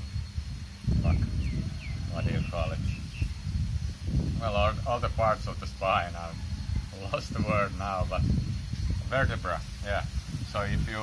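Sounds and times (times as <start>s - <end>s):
bird chirping: 0.0s - 3.6s
low rumble on microphone: 0.0s - 11.0s.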